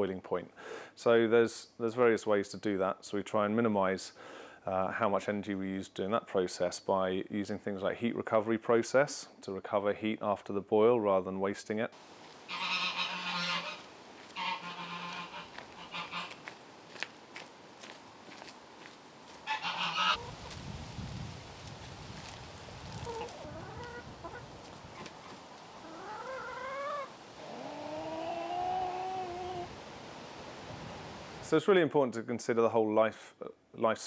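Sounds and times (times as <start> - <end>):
hens calling: 12.4 - 16.6, 19.4 - 20.5, 23.0 - 29.8.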